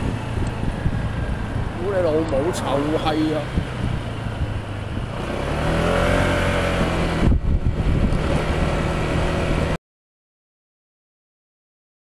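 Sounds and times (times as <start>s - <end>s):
car engine accelerating: 0.0s - 9.8s
road noise: 0.0s - 9.8s.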